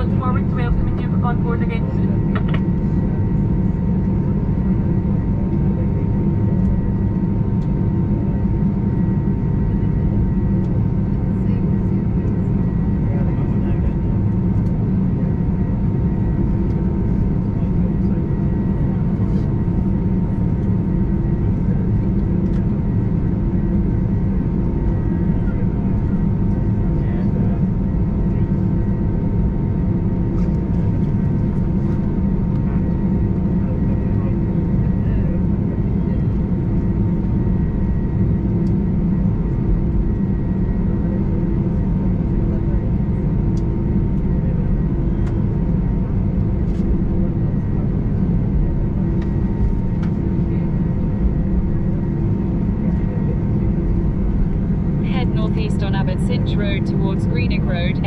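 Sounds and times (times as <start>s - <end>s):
jet engines idling rumble: 0.0s - 58.0s
faint steady whine: 46.4s - 58.0s.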